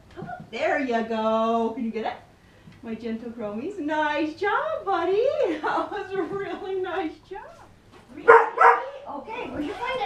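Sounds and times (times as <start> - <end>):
dog yipping barks: 8.3 - 8.9.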